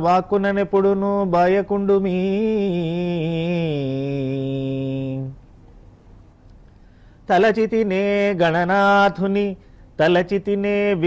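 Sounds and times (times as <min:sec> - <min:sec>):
man chanting: 0:00.0 - 0:05.4, 0:07.3 - 0:11.0.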